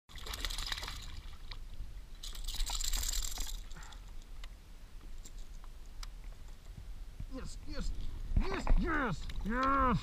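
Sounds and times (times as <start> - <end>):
fish splashing at water surface: 0.1 - 1.5.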